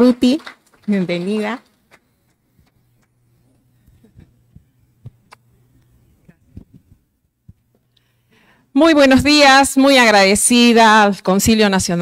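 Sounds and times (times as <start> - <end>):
low sound system hum: 1.8 - 10.7
microphone handling knocks: 6.3 - 7.8.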